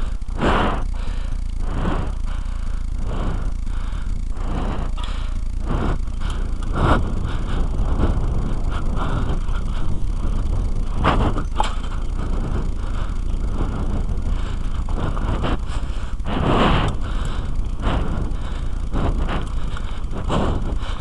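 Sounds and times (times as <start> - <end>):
wind rumble on microphone: 5.7 - 21.0
rush of wind: 5.8 - 21.0
bike rattling and knocking: 8.7 - 13.4.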